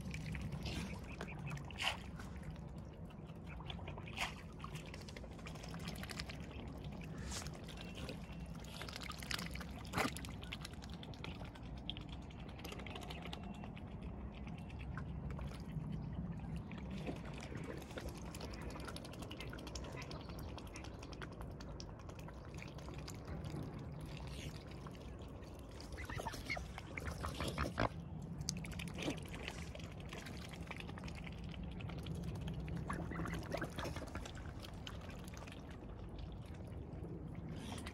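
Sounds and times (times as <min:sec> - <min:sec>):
swans splashing in water: 0:00.0 - 0:37.9.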